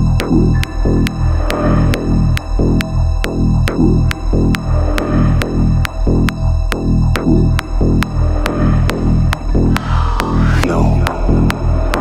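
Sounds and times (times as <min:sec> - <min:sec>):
electronic dance music: 0:09.8 - 0:11.5.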